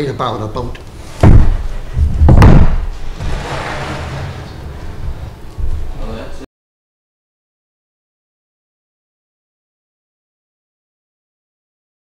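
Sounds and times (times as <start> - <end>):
heavy thumps: 0.9 - 6.0
sharp knock: 1.2 - 3.4.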